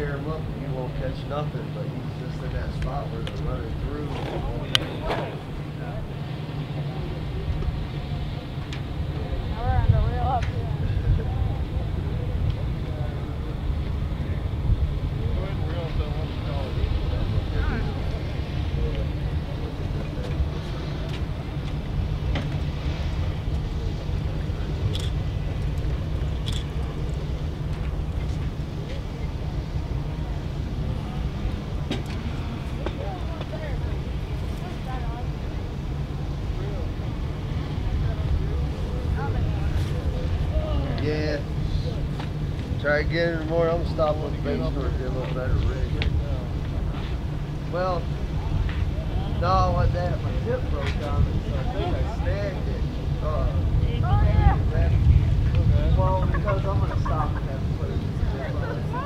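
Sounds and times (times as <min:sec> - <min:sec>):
faint voices talking: 0:00.0 - 0:59.0
wind rumble on microphone: 0:00.0 - 0:59.0.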